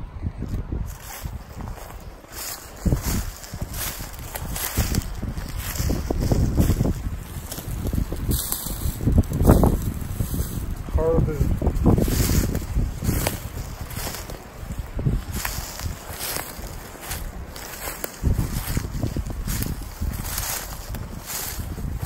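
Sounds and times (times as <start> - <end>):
wind buffeting microphone: 0.0 - 22.0
footsteps crunching through dry leaves: 0.9 - 22.0.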